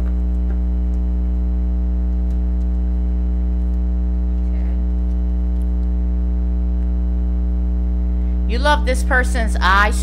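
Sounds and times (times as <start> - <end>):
loud electrical hum: 0.0 - 10.0.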